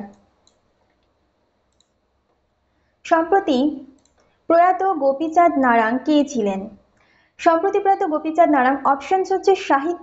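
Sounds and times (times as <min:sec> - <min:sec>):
faint computer mouse clicks: 0:00.1 - 0:02.4, 0:03.9 - 0:04.4.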